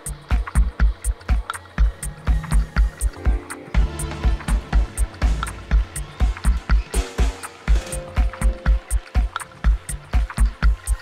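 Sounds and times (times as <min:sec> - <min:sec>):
hi-hat ticks: 0:00.0 - 0:11.0
kick drum: 0:00.1 - 0:10.9.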